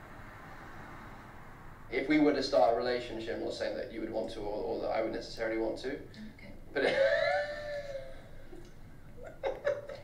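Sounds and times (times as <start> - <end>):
man laughing: 6.7 - 8.4, 9.2 - 10.0.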